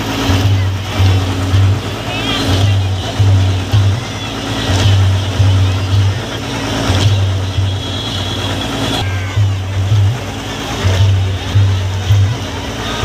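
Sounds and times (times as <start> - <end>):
large crowd din: 0.0 - 13.0.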